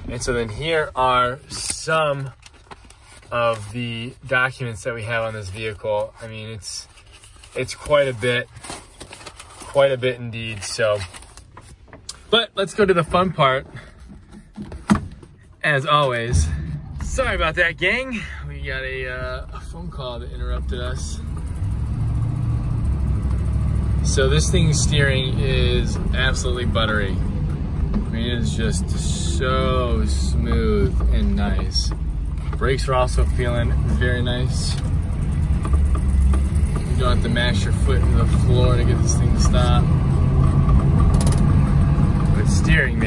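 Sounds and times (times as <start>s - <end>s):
car engine low rumble: 15.1s - 43.0s.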